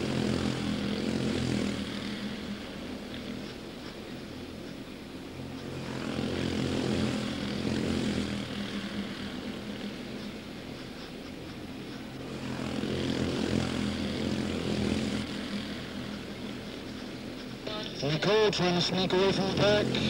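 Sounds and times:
race car engines buzzing: 0.0 - 20.0.

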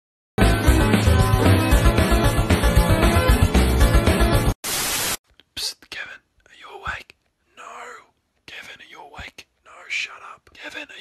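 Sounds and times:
person whispering: 5.4 - 11.0.

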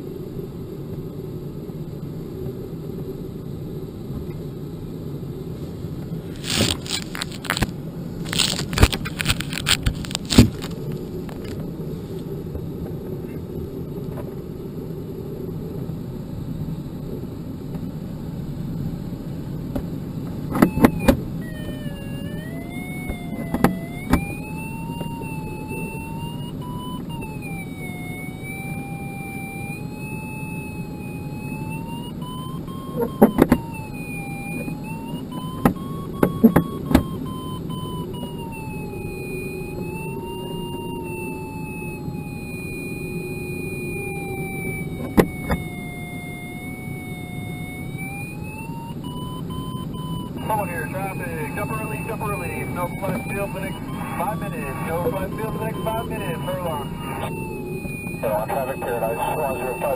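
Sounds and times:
wavering electronic variometer tone: 20.4 - 59.9.

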